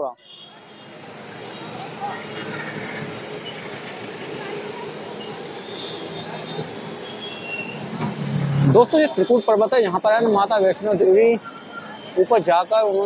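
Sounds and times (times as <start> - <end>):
crowd chatter: 0.0 - 13.0
passing traffic: 0.0 - 13.0.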